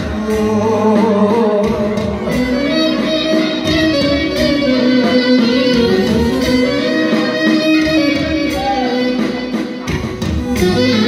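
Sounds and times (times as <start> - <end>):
clarinet melody: 2.3 - 11.0.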